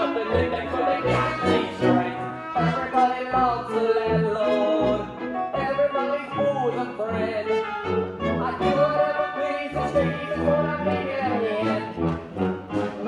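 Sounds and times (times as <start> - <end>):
brass: 0.0 - 13.0
orchestra playing held chords: 0.0 - 13.0.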